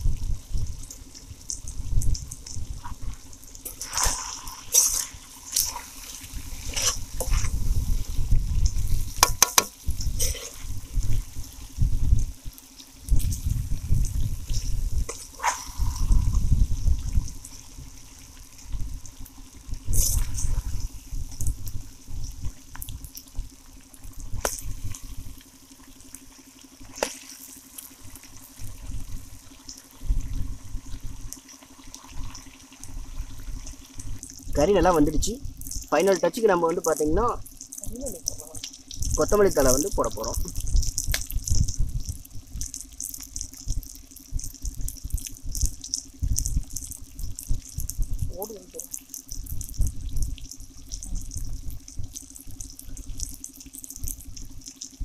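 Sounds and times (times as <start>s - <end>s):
low rumbles: 0.0s - 25.5s, 32.8s - 53.4s
chicken frying in oil: 0.0s - 55.0s
gravy simmering and bubbling: 0.0s - 55.0s
small crackles: 0.0s - 55.0s
sharp pops: 9.1s - 10.5s.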